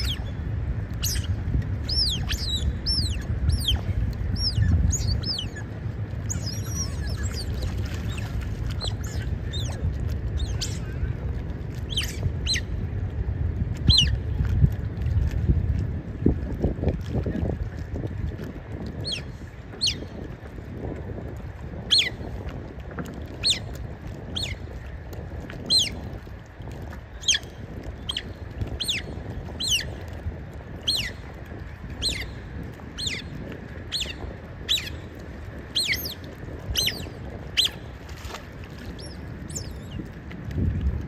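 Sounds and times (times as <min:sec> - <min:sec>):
wind rumble: 0:00.0 - 0:41.0.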